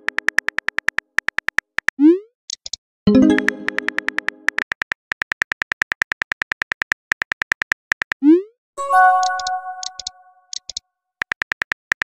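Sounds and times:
phone keyboard typing clicks: 0.0s - 8.2s, 9.0s - 12.0s.

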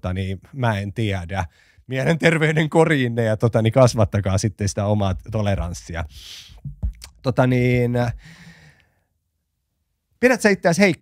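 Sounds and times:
breathy exhale: 8.2s - 9.0s.

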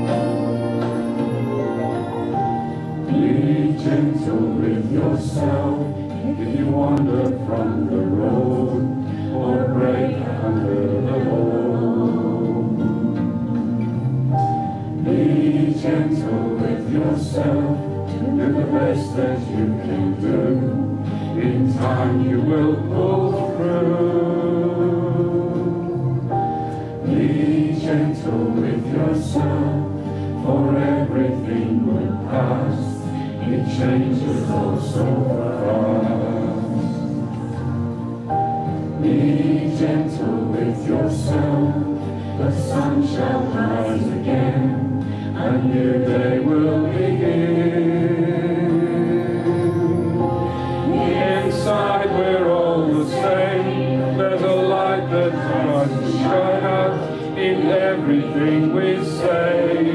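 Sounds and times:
group singing into microphones: 0.0s - 59.9s
instrumental accompaniment: 0.0s - 59.9s.

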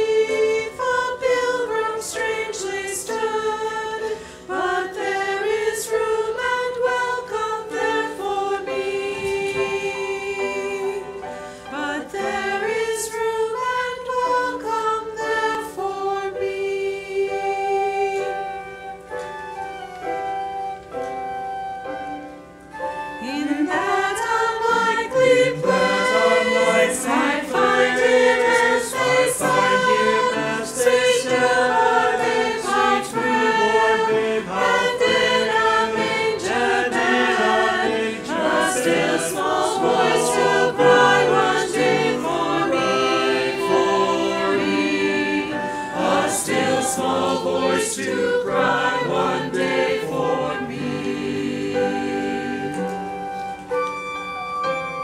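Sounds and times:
church choir singing: 0.0s - 55.0s.

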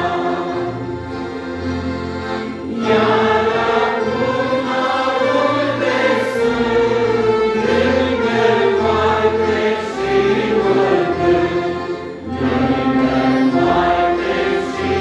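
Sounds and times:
accordions: 0.0s - 15.0s
clarinet: 0.0s - 15.0s
voices singing together: 0.0s - 15.0s.

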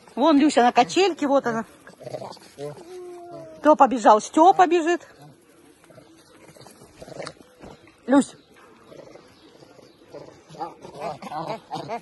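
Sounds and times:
young monkeys playing: 0.0s - 12.0s.

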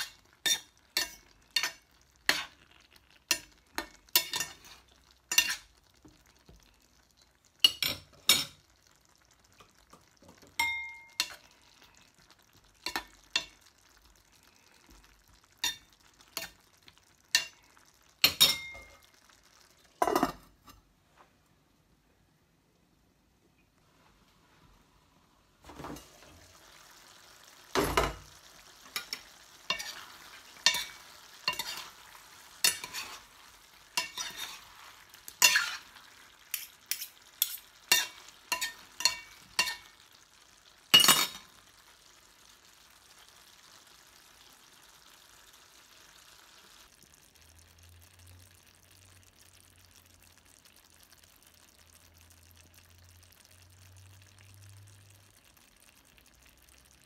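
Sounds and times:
food sizzling: 0.0s - 20.9s, 23.8s - 57.0s
spoon clinking against metal pot: 10.6s - 11.4s, 18.2s - 19.0s.

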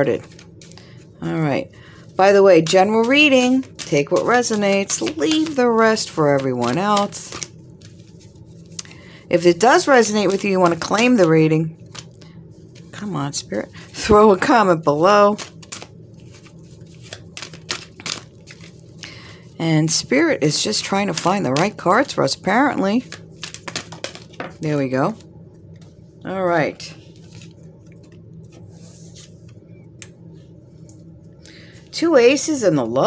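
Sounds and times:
cards being shuffled: 0.0s - 1.0s, 2.2s - 9.0s, 9.8s - 14.3s, 14.9s - 19.2s, 20.5s - 22.2s, 23.0s - 25.2s, 26.9s - 30.2s
steady low hum: 0.0s - 33.0s.

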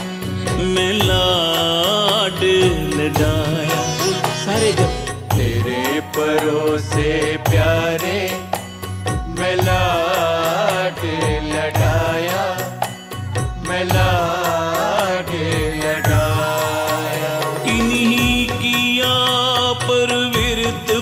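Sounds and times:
steady drum rhythm: 0.0s - 21.0s.

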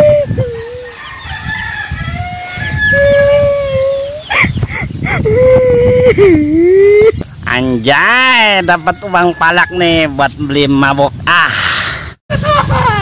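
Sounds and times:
boy crying and wailing: 0.0s - 1.0s, 2.9s - 7.2s.

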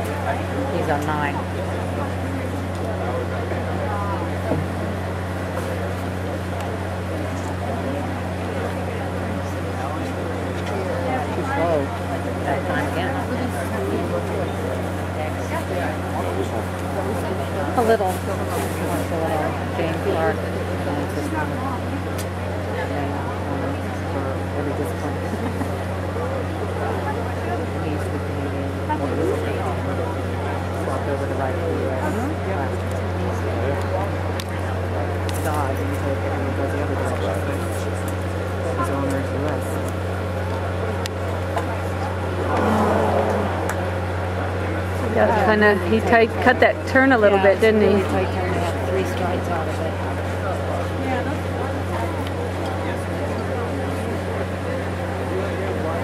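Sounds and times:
spectators chattering: 0.0s - 56.0s
steady low hum: 0.0s - 56.0s.

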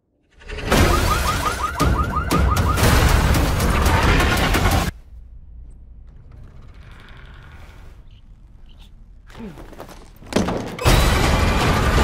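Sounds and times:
faint ticks and creaks: 5.7s - 9.0s.

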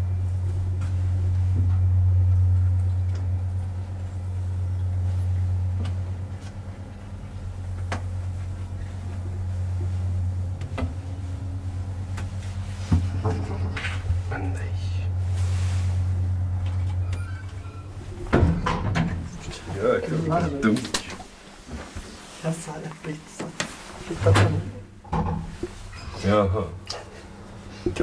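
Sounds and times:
elevator hum: 0.0s - 28.0s.

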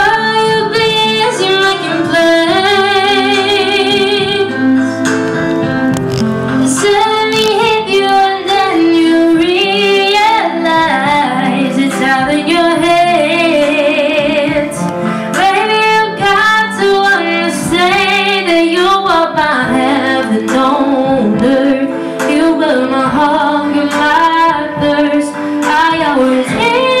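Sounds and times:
woman singing slow song: 0.0s - 5.2s, 6.6s - 27.0s
instrumental accompaniment: 0.0s - 27.0s.

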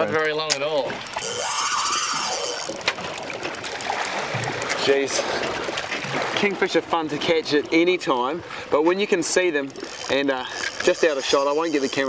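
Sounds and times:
water sloshing against boat hull: 0.0s - 12.0s.

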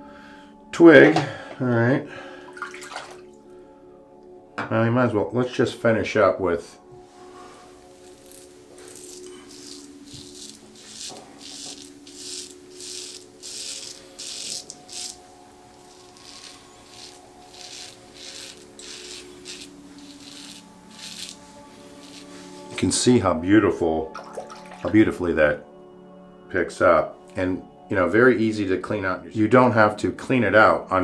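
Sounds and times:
razor scraping stubble: 7.2s - 22.8s.

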